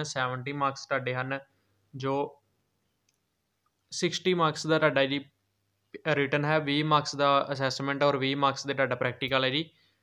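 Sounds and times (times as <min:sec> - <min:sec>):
faint clicks: 0:03.0 - 0:03.9.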